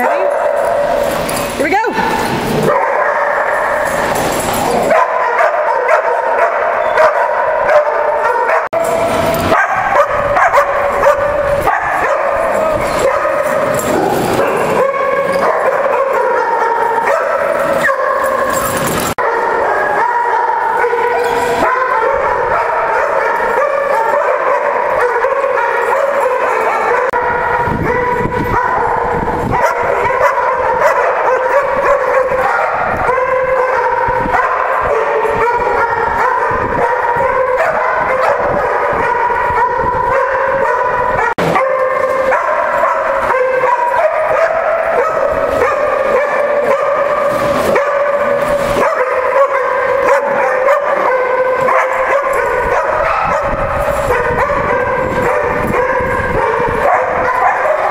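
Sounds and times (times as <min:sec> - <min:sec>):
dogs barking and yipping: 0:00.0 - 0:57.9.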